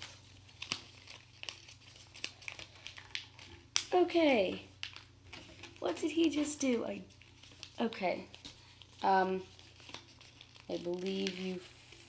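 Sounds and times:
paper crinkling and rustling: 0:00.0 - 0:12.0.

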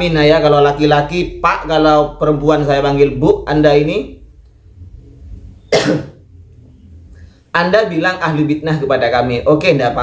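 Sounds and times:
man coughing: 0:05.7 - 0:06.2.

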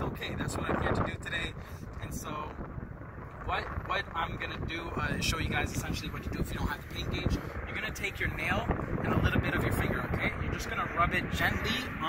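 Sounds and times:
man talking: 0:00.0 - 0:02.6, 0:03.4 - 0:12.0
wind rumble on microphone: 0:00.0 - 0:12.0.

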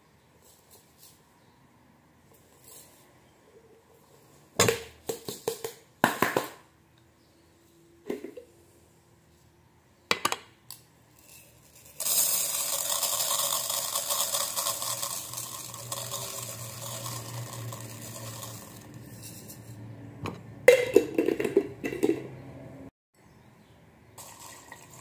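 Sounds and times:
lentils poured into metal pot: 0:11.2 - 0:19.8, 0:24.2 - 0:25.0.

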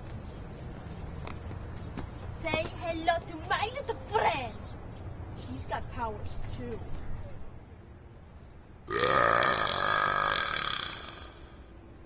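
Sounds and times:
girl burping: 0:08.9 - 0:11.5.

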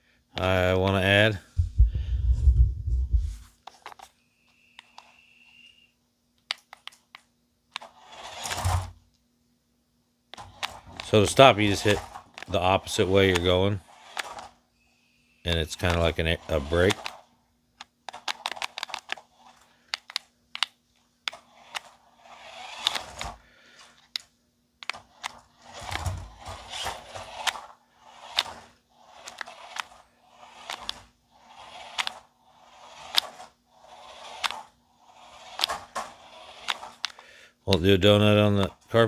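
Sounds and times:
toy truck motor whirring: 0:03.8 - 0:05.8, 0:07.7 - 0:09.0, 0:10.4 - 0:37.2.

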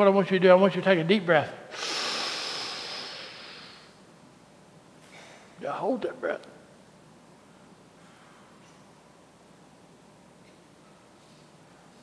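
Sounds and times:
deep breath drawn in: 0:01.7 - 0:04.0.

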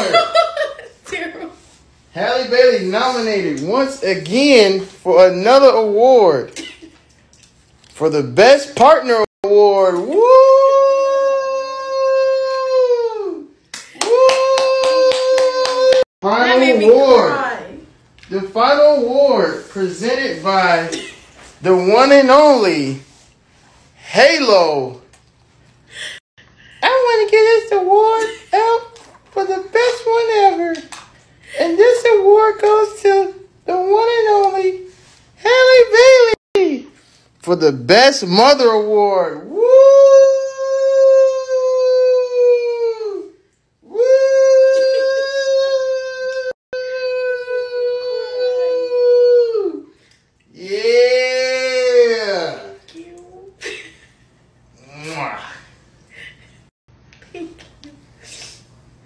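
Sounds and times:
high-pitched woo cheer: 0:10.0 - 0:16.0
hands clapping: 0:13.6 - 0:16.1, 0:29.8 - 0:31.2
high voice holding long oh: 0:43.9 - 0:50.0.

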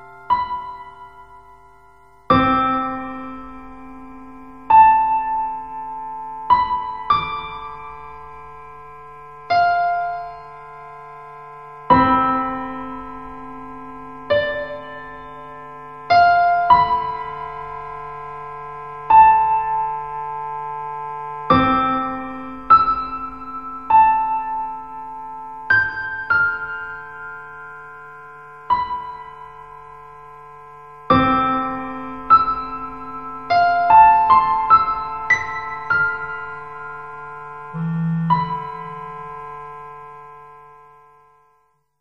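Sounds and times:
piano chords: 0:00.0 - 0:41.7.

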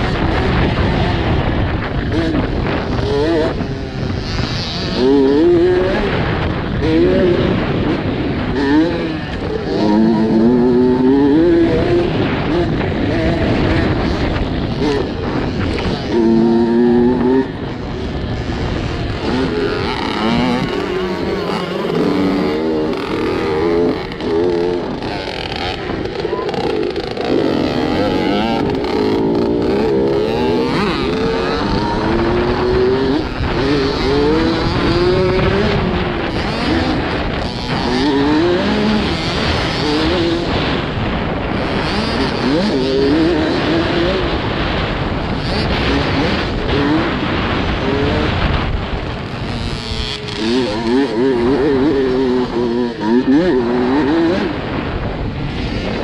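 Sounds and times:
dirt bike engine revving: 0:00.0 - 0:56.0
wind noise: 0:00.0 - 0:56.0.

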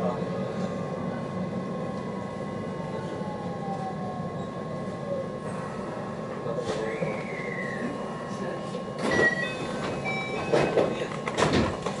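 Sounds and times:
train cabin hum: 0:00.0 - 0:12.0.

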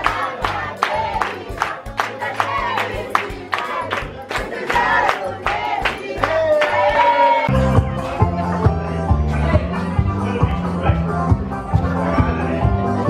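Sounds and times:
group singing: 0:00.0 - 0:07.5
rhythmic hand-clapping: 0:00.0 - 0:08.4.

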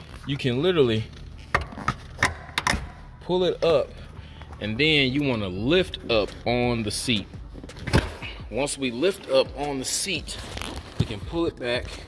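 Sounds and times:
sharp clicks and knocks: 0:01.4 - 0:03.0.

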